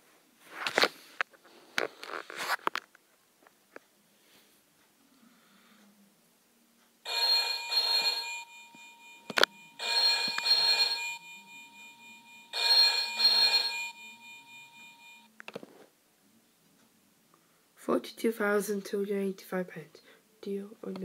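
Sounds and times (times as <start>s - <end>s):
telephone ringing from speaker: 7.1s - 15.3s.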